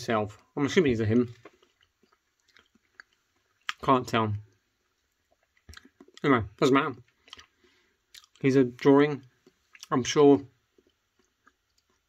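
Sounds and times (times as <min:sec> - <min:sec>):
person speaking: 0:00.0 - 0:01.6, 0:08.3 - 0:10.6.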